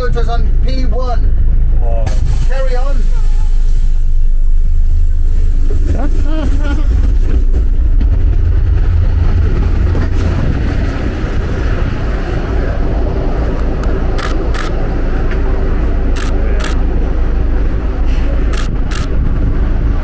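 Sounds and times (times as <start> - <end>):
vehicle engine running: 0.0 - 20.0
wind on microphone: 5.0 - 20.0
sharp clicks: 13.8 - 14.8, 16.1 - 16.8, 18.5 - 19.1.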